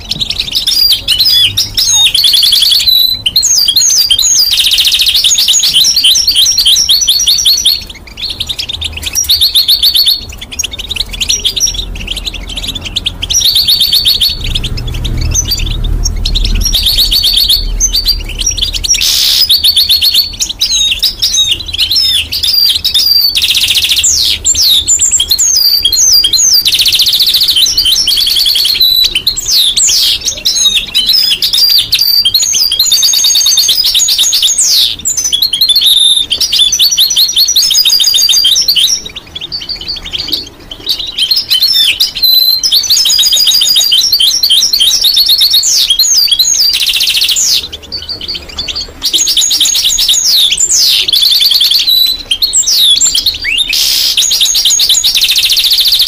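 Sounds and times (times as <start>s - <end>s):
finch singing: 0.0s - 56.0s.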